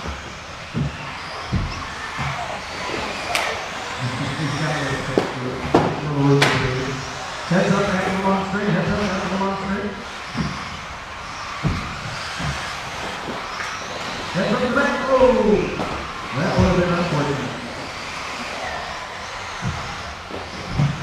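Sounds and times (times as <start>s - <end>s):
rc car motor whine: 0.0s - 21.0s
rc cars knocking: 0.0s - 21.0s.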